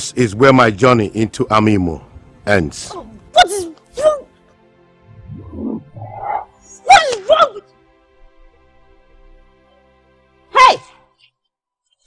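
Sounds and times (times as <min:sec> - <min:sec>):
quiet background music: 0:00.0 - 0:12.0
woman crying out: 0:06.8 - 0:07.7.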